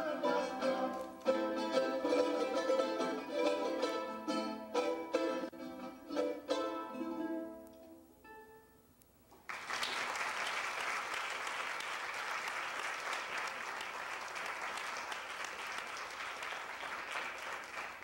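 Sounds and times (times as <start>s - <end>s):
charango plucked notes and chords: 0.0s - 8.8s
audience applause: 9.4s - 18.0s.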